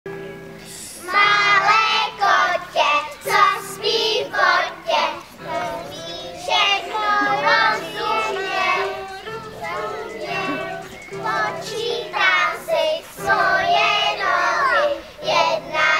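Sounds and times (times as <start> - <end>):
musical accompaniment: 0.1 - 15.9
children singing together: 0.6 - 15.9.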